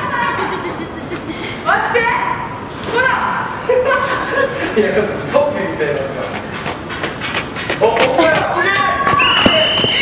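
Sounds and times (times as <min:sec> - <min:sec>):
people laughing and chattering: 0:00.0 - 0:02.5, 0:03.4 - 0:06.5, 0:07.7 - 0:10.0.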